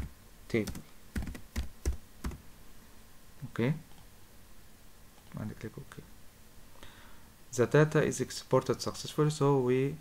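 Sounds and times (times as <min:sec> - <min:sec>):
typing on computer keyboard: 0:00.0 - 0:02.4.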